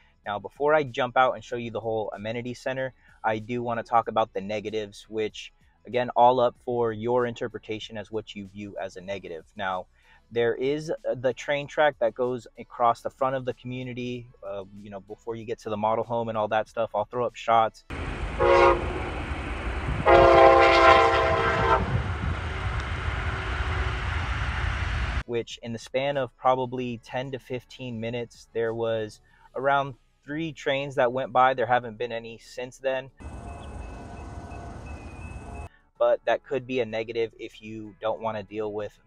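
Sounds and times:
train horn blasts: 0:17.9 - 0:24.8, 0:33.2 - 0:35.7
steady low rumble: 0:17.9 - 0:25.2
wind buffeting microphone: 0:18.0 - 0:25.2.

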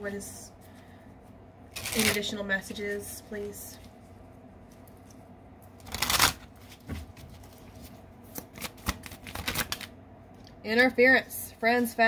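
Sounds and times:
cards shuffling: 0:05.8 - 0:09.9.

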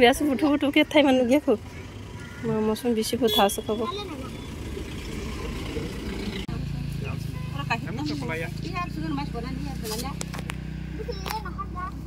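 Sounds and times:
vehicle engine running: 0:00.0 - 0:12.0
murmuring voices: 0:04.2 - 0:06.7.

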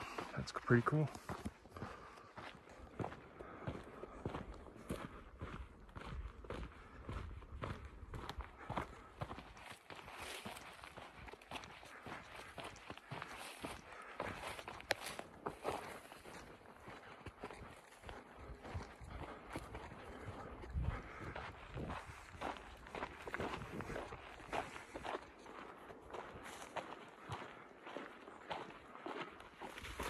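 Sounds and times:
footsteps on dirt trail: 0:00.0 - 0:30.0.

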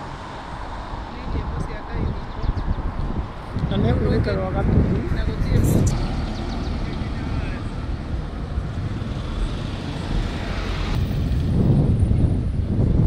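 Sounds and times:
vehicle passing: 0:00.0 - 0:12.5
road traffic passing: 0:00.0 - 0:13.0
wind rumble on microphone: 0:00.6 - 0:13.0.

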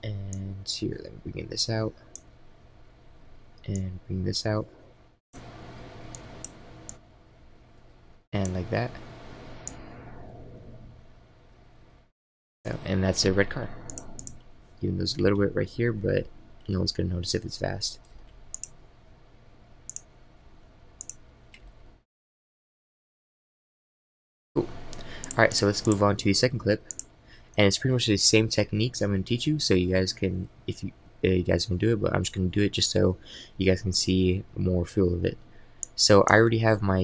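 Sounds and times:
faint background hum: 0:00.0 - 0:12.1, 0:12.7 - 0:22.0, 0:24.6 - 0:37.0
computer mouse clicks: 0:06.1 - 0:07.0, 0:09.6 - 0:09.9, 0:13.8 - 0:14.5, 0:18.0 - 0:18.8, 0:21.0 - 0:21.8, 0:24.9 - 0:26.0, 0:26.9 - 0:27.1.

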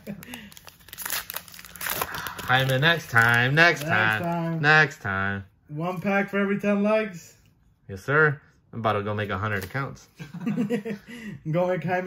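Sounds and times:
foil wrapper crinkling and tearing: 0:00.0 - 0:04.5.

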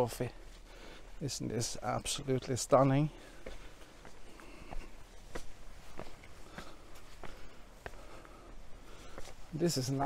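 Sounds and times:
footsteps on rock: 0:02.1 - 0:10.0.

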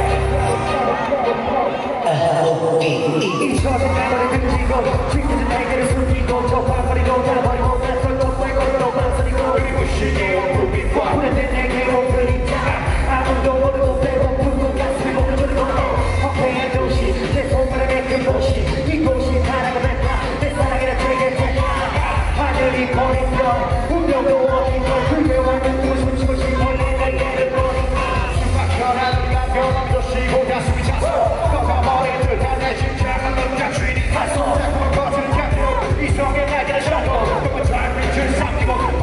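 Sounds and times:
heavy bass beat: 0:00.0 - 0:39.0
live hip-hop music: 0:00.0 - 0:39.0
person rapping: 0:00.0 - 0:39.0
vocals over backing track: 0:00.0 - 0:39.0.

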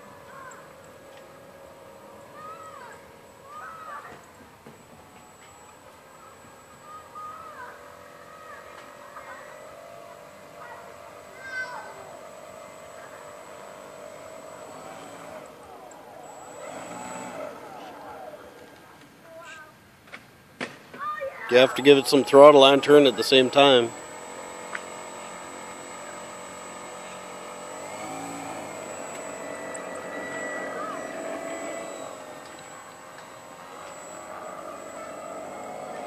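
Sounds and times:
faint distant voices: 0:00.0 - 0:20.0, 0:20.9 - 0:36.0
faint steady hum: 0:00.0 - 0:36.0.

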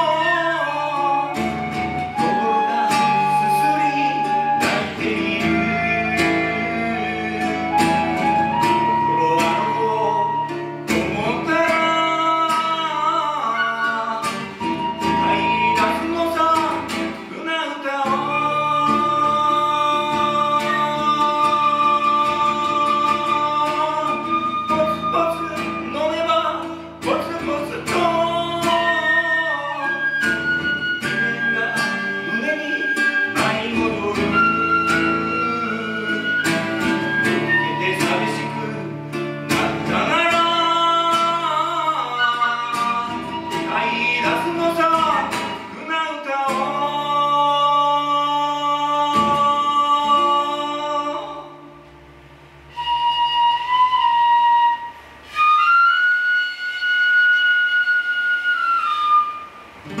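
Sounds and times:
bamboo flute melody: 0:00.0 - 0:17.2, 0:18.1 - 0:51.7, 0:52.6 - 1:00.0
strummed acoustic guitar: 0:00.0 - 0:55.9, 0:58.9 - 1:00.0.

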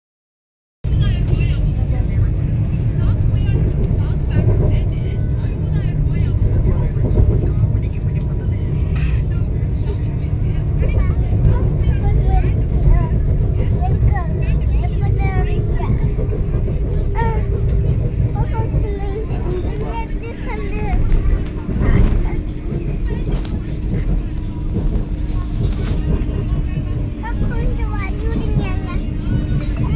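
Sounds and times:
train running low rumble: 0:00.8 - 0:29.9
passengers talking: 0:00.9 - 0:29.9.

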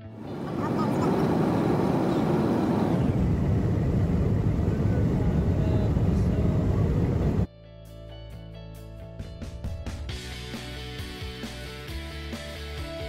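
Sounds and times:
car road and engine rumble: 0:00.0 - 0:07.5.

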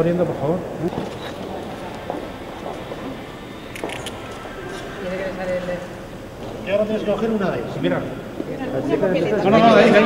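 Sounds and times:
murmur of people: 0:00.0 - 0:10.0.

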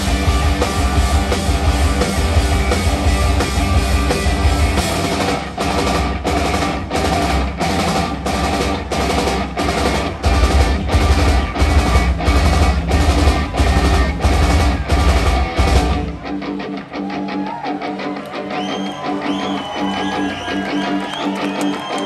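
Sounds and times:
drum kit beat: 0:00.0 - 0:16.6
bass guitar: 0:00.0 - 0:21.7
distorted electric guitars: 0:00.0 - 0:22.0.

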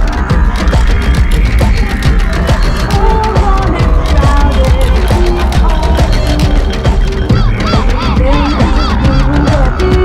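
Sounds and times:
electronic dance music: 0:00.0 - 0:10.0
honk-like calls: 0:07.2 - 0:10.0.

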